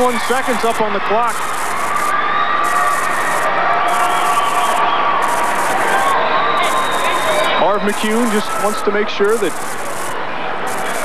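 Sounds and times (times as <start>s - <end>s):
crowd cheering and shouting: 0.0s - 11.0s.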